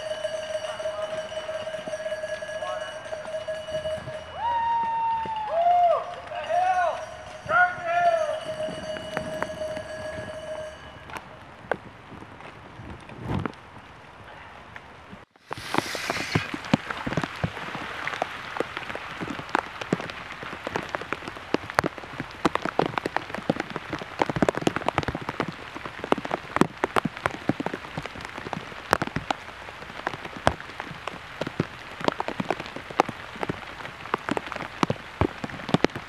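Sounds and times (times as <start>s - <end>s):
raindrops ticking close by: 0.0s - 36.0s
steady rain: 0.0s - 36.0s.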